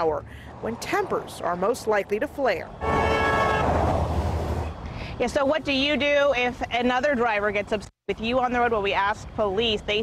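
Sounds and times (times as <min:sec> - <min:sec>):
highway traffic passing: 0:00.0 - 0:10.0
vehicle horn: 0:02.8 - 0:03.8.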